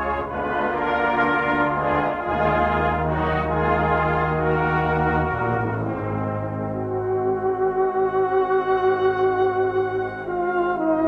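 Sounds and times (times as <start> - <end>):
brass band playing slow ballad: 0.0 - 11.0.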